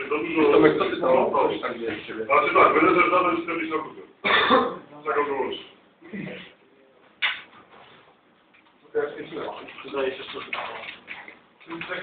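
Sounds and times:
man clearing his throat: 0:04.2 - 0:04.8.

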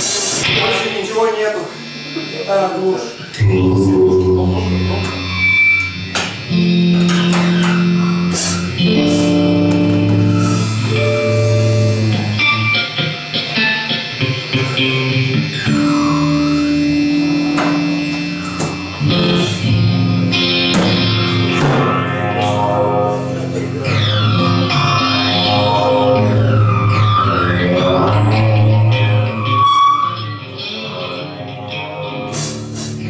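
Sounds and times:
guitar amplifier buzz: 0:00.0 - 0:33.0
person speaking: 0:02.6 - 0:05.4
rock band sustained chord: 0:03.0 - 0:29.8
sliding tone: 0:03.4 - 0:06.6.

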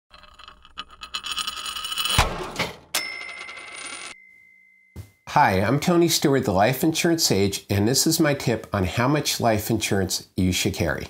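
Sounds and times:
bell-like ding: 0:03.0 - 0:05.3.

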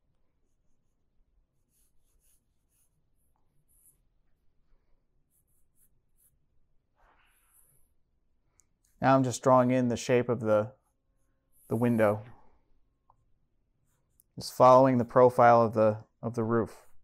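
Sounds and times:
pencil strokes on paper: 0:00.0 - 0:09.8, 0:10.7 - 0:12.4, 0:13.2 - 0:15.2.

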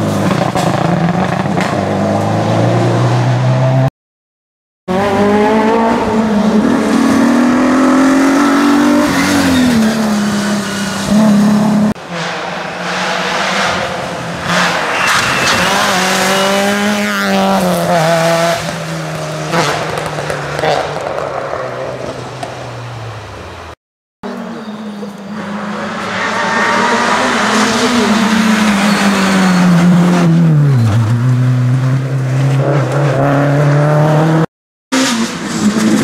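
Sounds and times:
rally car engines revving: 0:04.9 - 0:23.7, 0:24.3 - 0:36.0.

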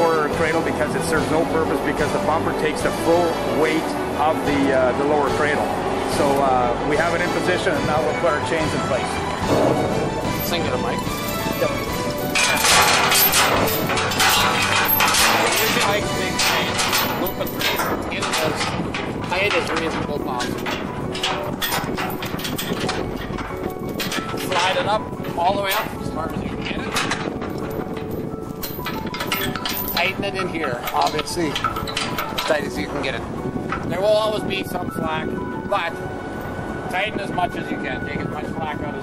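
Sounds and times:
steady background hum: 0:00.0 - 0:39.0
steel chain clinking and rattling: 0:08.4 - 0:34.8.

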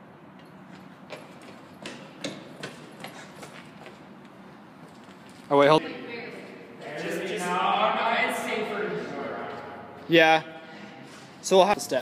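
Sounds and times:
footsteps on concrete floor: 0:00.4 - 0:05.5, 0:10.9 - 0:11.5.

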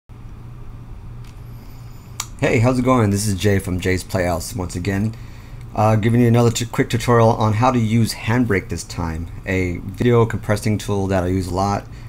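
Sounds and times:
low background hum: 0:00.1 - 0:12.0.

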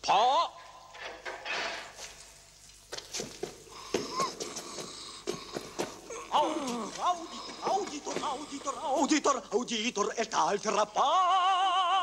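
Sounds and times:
breathy hiss: 0:01.7 - 0:10.8
man's faint voice: 0:06.2 - 0:09.7.

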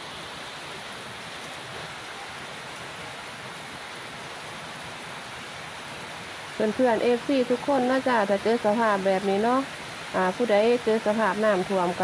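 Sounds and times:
rain falling on flooded ground: 0:00.0 - 0:12.0.

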